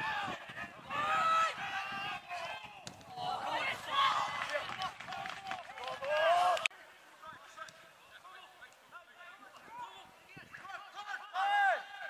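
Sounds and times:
men shouting and calling: 0.0s - 6.7s, 9.4s - 12.0s.

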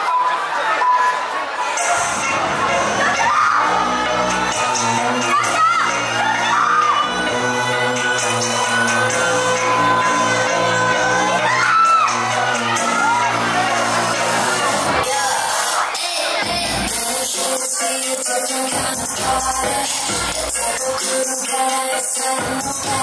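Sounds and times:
crowd cheering and whooping: 0.0s - 16.6s
pop dance track: 0.2s - 23.0s.

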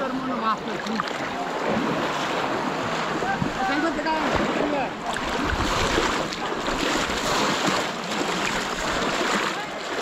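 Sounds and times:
water sloshing and splashing: 0.0s - 10.0s.

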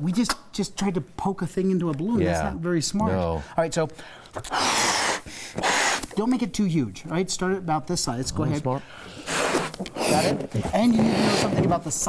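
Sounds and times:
breath puffing into balloon: 4.4s - 6.2s, 8.9s - 11.6s.

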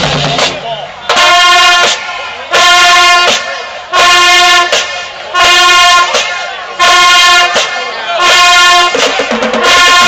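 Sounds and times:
brass band blasting held notes: 0.0s - 10.0s.

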